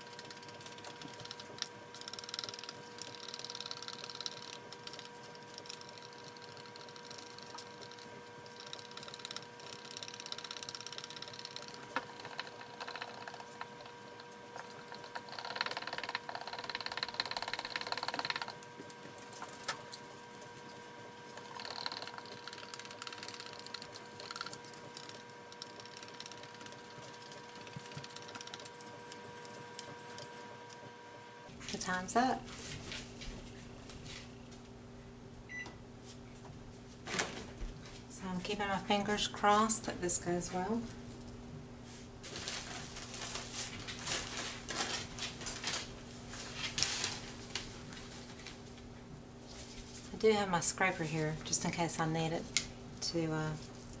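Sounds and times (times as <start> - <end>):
faint steady hum: 0.0 - 54.0
timer short high beeps: 28.7 - 30.5.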